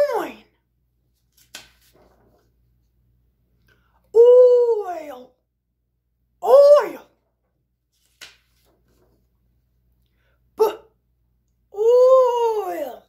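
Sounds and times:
high-pitched voice sounding out word: 0:00.0 - 0:00.5, 0:04.1 - 0:05.4, 0:06.4 - 0:07.1, 0:10.6 - 0:10.9, 0:11.7 - 0:13.0.

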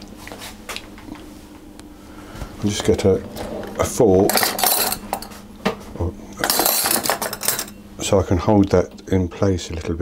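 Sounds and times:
metal cutlery clinking: 0:04.3 - 0:05.3, 0:06.4 - 0:07.8.

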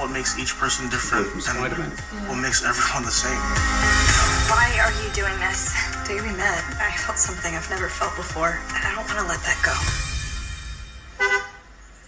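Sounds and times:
car horn toot: 0:11.1 - 0:11.7.

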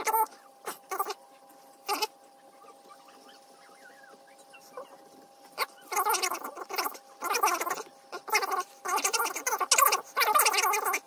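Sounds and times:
small animal calling: 0:00.0 - 0:11.0.

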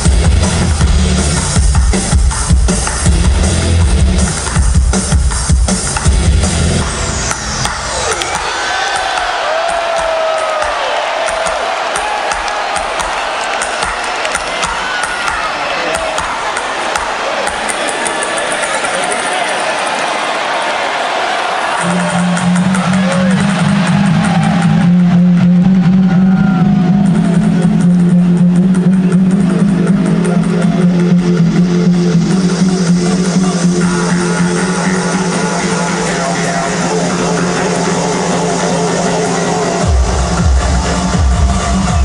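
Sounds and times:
electronic dance music: 0:00.0 - 0:42.0
crowd cheering: 0:07.1 - 0:42.0.

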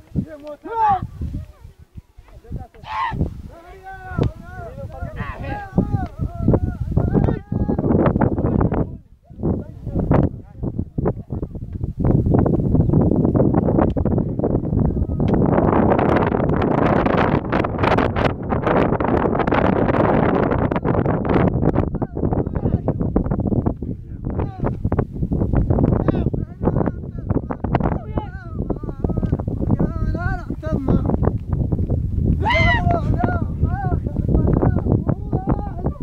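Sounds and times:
wind buffeting microphone: 0:00.0 - 0:36.0
person calling out: 0:32.4 - 0:34.1.

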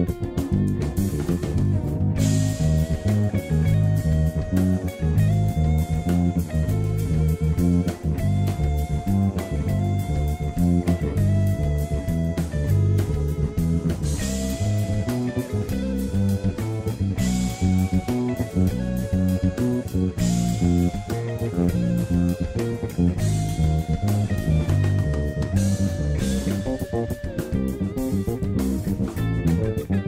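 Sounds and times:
drums: 0:00.0 - 0:30.0
electric bass line: 0:00.0 - 0:30.0
lead melody of long notes: 0:00.0 - 0:30.0.

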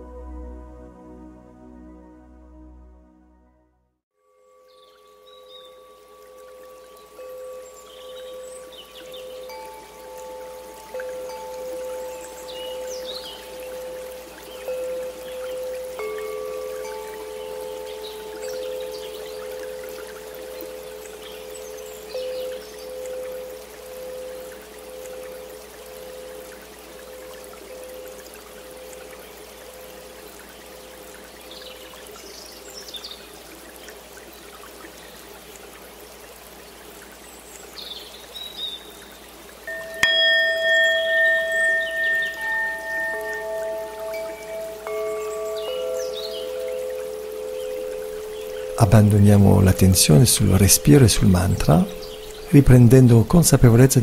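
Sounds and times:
soft sustained tones: 0:00.0 - 0:54.0
trickle of water: 0:04.3 - 0:54.0
bell ringing: 0:39.7 - 0:53.0.

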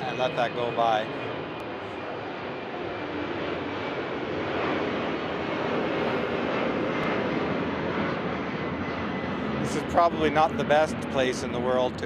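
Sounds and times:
airplane passing overhead: 0:00.0 - 0:12.0.

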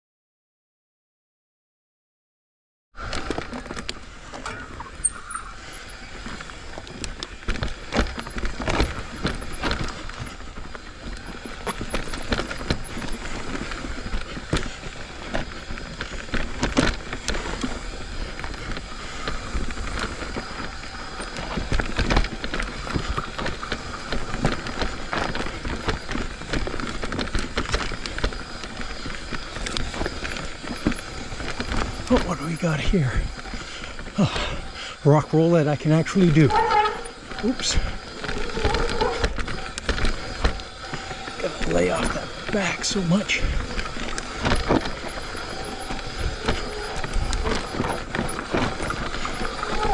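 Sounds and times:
bike tyres rolling on dirt: 0:03.0 - 0:49.9
bike knocks and rattles: 0:04.6 - 0:32.4, 0:36.5 - 0:49.9.

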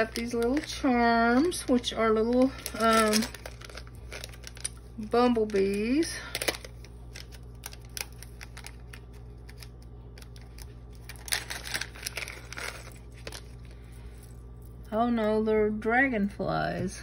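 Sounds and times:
plastic packet crinkling: 0:00.0 - 0:14.9.

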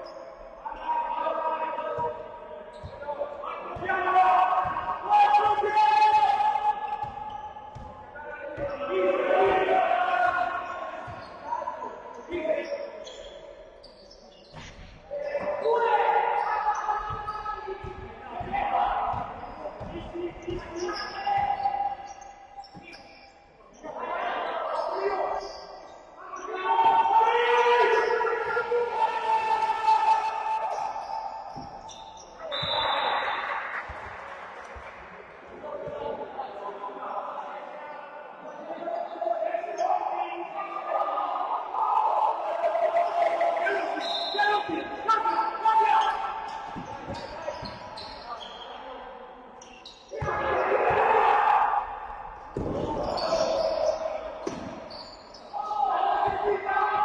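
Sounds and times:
players shouting: 0:00.0 - 0:13.6, 0:15.1 - 0:23.1, 0:23.7 - 0:49.2, 0:50.1 - 0:57.0
basketball bouncing on hall floor: 0:06.9 - 0:09.8, 0:10.6 - 0:11.4, 0:16.4 - 0:23.0, 0:46.5 - 0:48.2, 0:52.3 - 0:55.1.

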